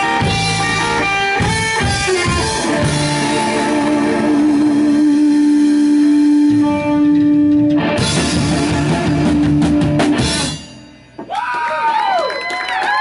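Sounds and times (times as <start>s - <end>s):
live band playing: 0.0s - 11.6s
drum and cymbal hits: 7.9s - 11.4s.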